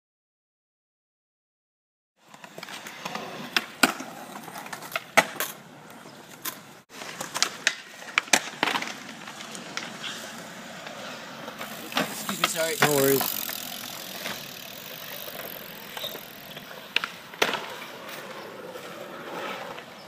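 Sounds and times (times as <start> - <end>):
skateboard clacking on ground: 2.2 - 20.0
skateboard wheels rolling on concrete: 2.2 - 20.0.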